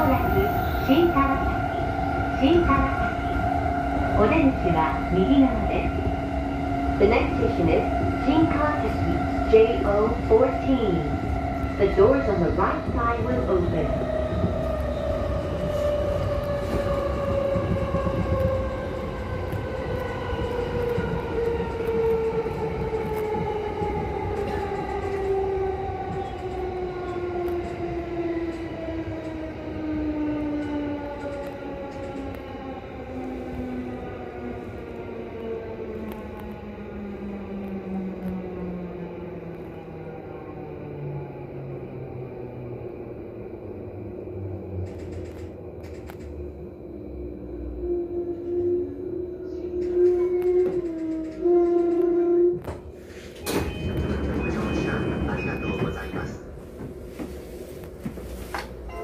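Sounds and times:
wheels rumbling on rail: 0.0 - 59.0.

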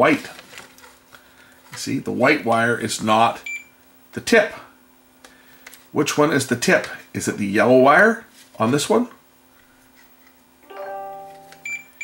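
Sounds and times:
multimeter continuity beep: 3.4 - 3.7, 11.3 - 12.0
low steady note: 10.6 - 11.8.

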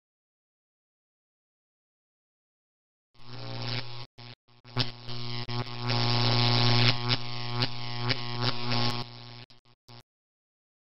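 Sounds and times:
neon sign electrical hum: 3.2 - 10.0.

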